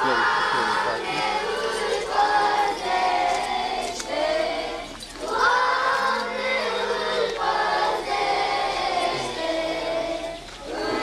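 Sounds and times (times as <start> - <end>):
choir chanting: 0.0 - 11.0.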